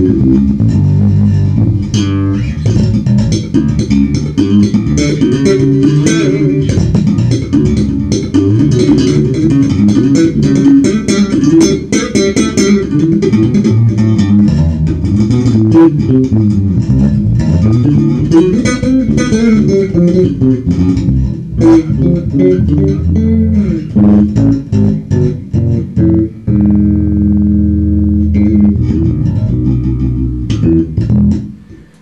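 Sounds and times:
electric bass played fingerstyle: 0.0s - 32.0s.

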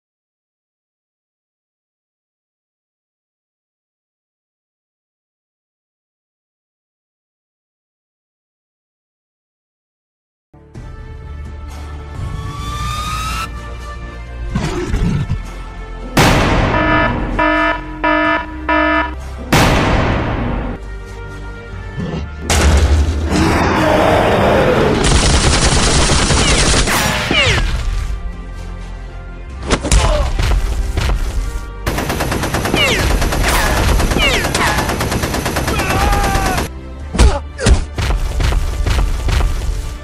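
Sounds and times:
alarm short beeps: 16.7s - 19.2s
rapid machine-gun fire: 25.0s - 27.4s, 31.9s - 36.7s.

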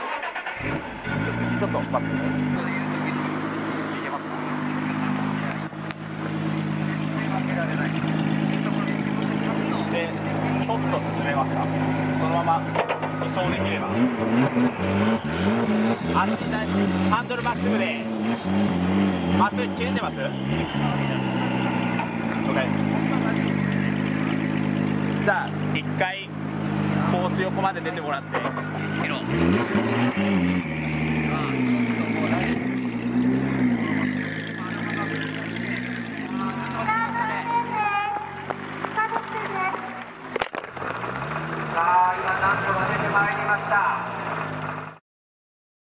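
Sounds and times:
voices: 0.0s - 30.3s, 31.0s - 44.9s
car engine idling: 0.0s - 45.0s
people talking: 1.2s - 14.5s, 15.8s - 18.4s, 19.3s - 21.4s, 22.3s - 26.3s, 26.9s - 29.4s, 31.2s - 32.9s, 33.6s - 40.1s, 41.6s - 44.5s.

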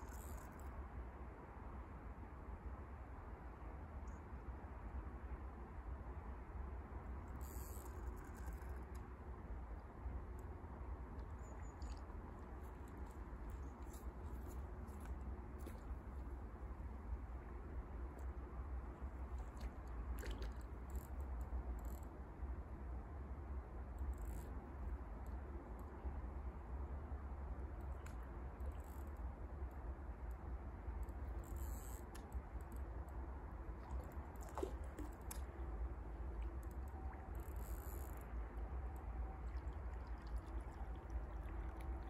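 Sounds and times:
faint clicks and rustles: 11.1s - 16.9s.

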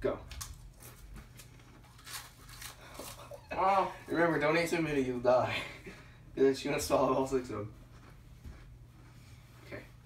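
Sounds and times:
crackers crunching: 0.2s - 3.5s.

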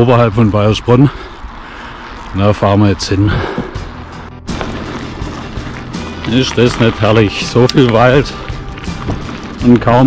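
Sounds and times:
tyres on gravel road: 0.0s - 10.0s
music: 3.8s - 10.0s.

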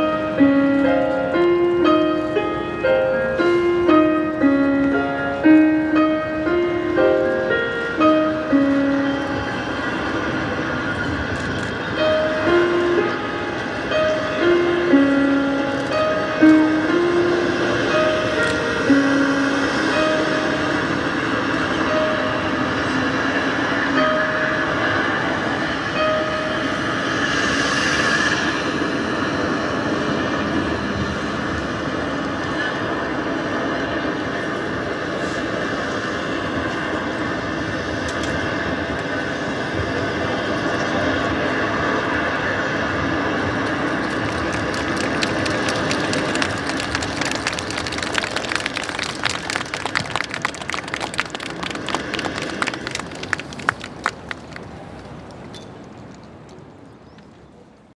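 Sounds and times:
sharp irregular claps or taps: 44.0s - 54.7s.

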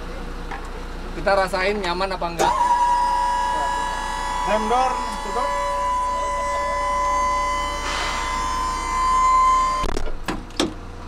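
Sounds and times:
hydraulic pump whine: 2.3s - 11.0s.

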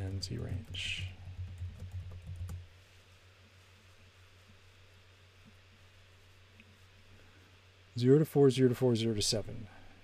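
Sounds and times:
typing on computer keyboard: 0.0s - 2.6s
faint low steady hum: 0.0s - 10.0s.

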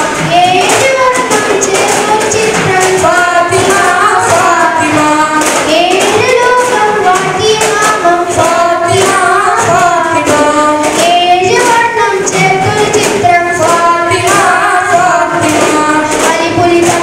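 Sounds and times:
boys singing in chorus: 0.0s - 17.0s
frame drum strikes: 0.0s - 17.0s.

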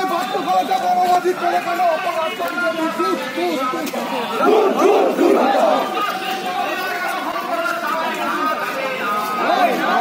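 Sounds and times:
crowd of men shouting a slogan: 0.0s - 10.0s.

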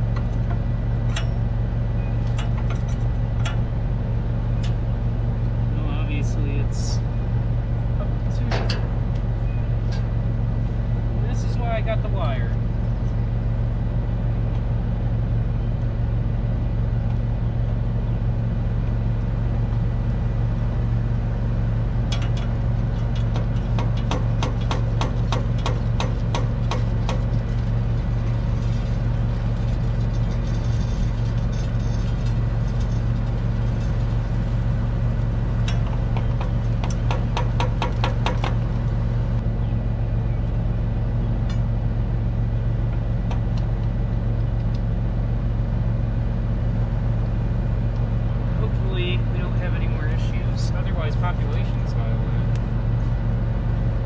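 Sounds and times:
tractor diesel engine idling: 0.0s - 54.0s.

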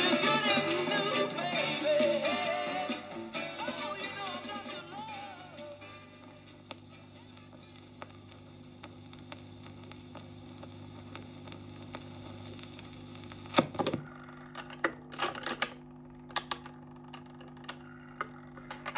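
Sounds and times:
record player hum: 0.0s - 18.9s
record surface noise: 6.1s - 18.9s
soft record clicks: 6.2s - 18.9s
record changer mechanism clattering: 13.5s - 18.9s.

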